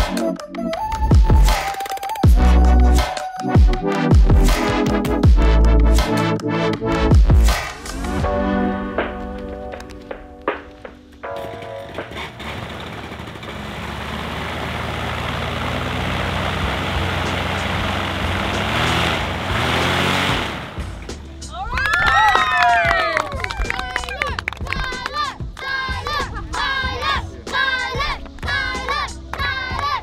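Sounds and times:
paramotor engine and propeller: 11.5s - 21.4s
children shouting and cheering: 21.4s - 30.0s.

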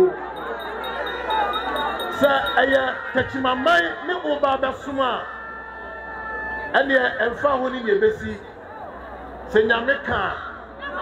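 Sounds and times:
chime-like ringing tones: 0.0s - 4.1s.

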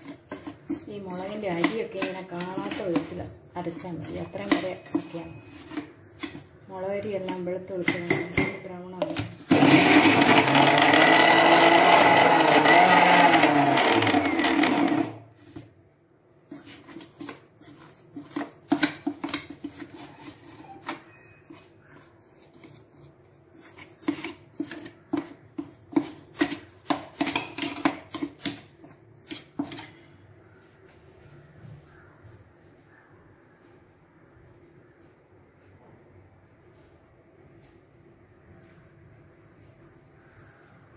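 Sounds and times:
spoon scraping steel jar: 0.0s - 6.5s
mixer grinder running: 9.5s - 15.2s.

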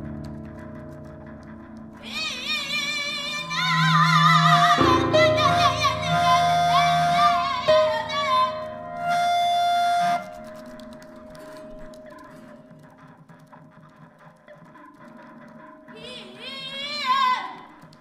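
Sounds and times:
high wordless voice with vibrato: 2.0s - 9.1s, 15.9s - 17.7s
long held tones: 2.0s - 12.5s.

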